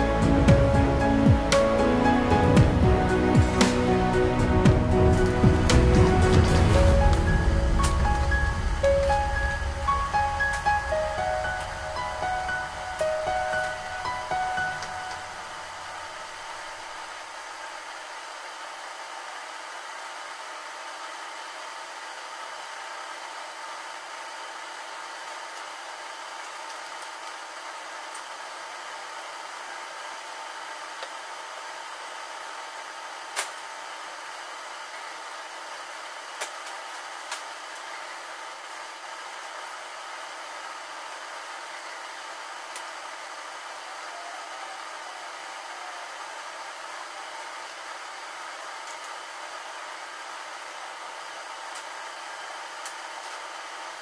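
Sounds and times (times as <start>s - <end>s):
machine hum with hiss: 0.0s - 54.0s.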